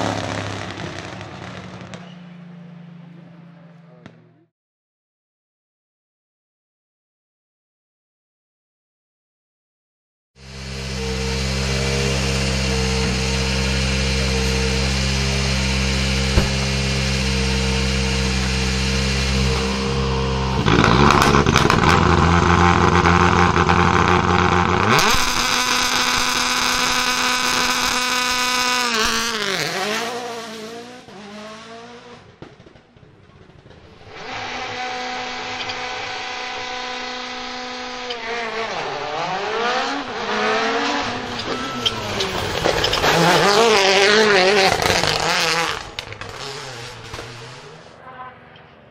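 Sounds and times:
rally car engine idling and revving: 0.0s - 4.5s, 10.4s - 48.9s
rally car passing at speed: 10.7s - 48.9s.

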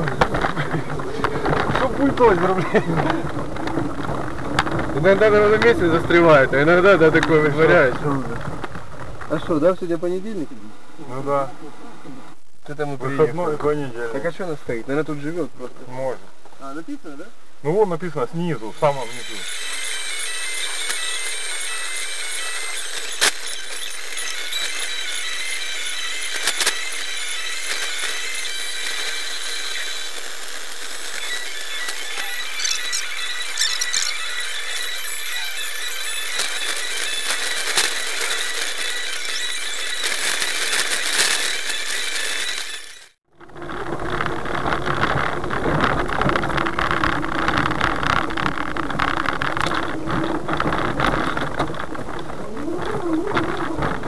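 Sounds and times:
electric car whine: 0.0s - 9.2s, 18.4s - 54.0s
road and snow noise: 18.6s - 34.9s.

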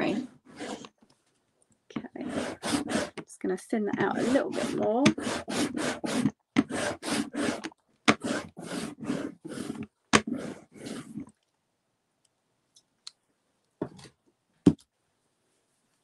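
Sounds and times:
rubber roller rolling over ink: 0.0s - 1.0s, 1.9s - 11.4s.

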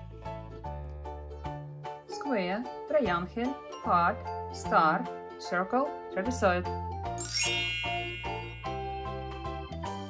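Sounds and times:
light background music: 0.0s - 10.0s
bright chime: 7.2s - 9.5s.

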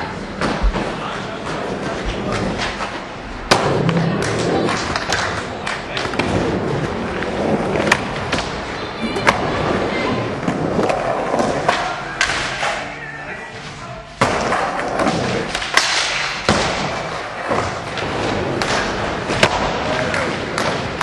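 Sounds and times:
skateboard wheels rolling on wood: 0.2s - 12.0s.

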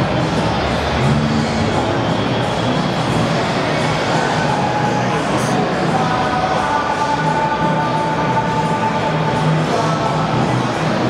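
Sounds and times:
din of a large indoor hall: 0.0s - 11.0s.

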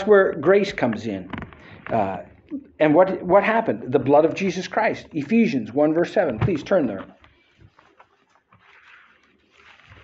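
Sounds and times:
book pages rustling: 6.9s - 10.0s.

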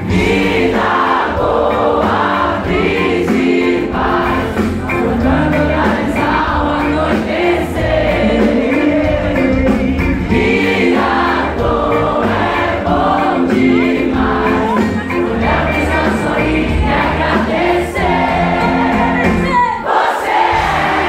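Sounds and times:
live pop band music: 0.0s - 21.0s.

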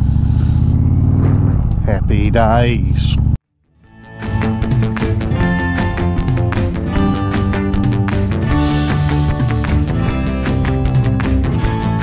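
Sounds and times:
motorcycle engine running: 0.0s - 2.0s.

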